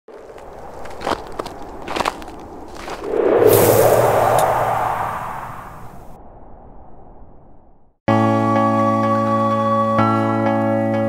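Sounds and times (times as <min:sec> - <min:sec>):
loud whoosh: 0:02.9 - 0:08.0.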